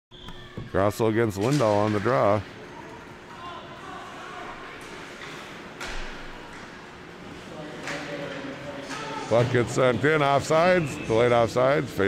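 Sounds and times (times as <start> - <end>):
hockey sticks and puck clacking: 4.7 - 6.9, 7.6 - 9.8.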